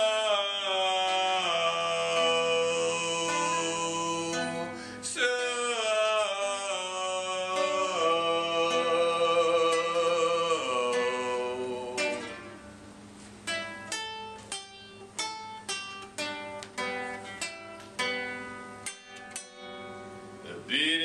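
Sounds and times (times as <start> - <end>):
person singing: 0.0 - 12.6
acoustic guitar plucked notes: 0.0 - 21.0.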